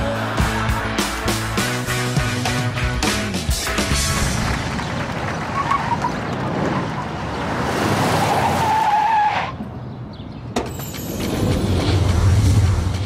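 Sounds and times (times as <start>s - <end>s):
car tyres squealing to a stop: 8.2s - 9.6s.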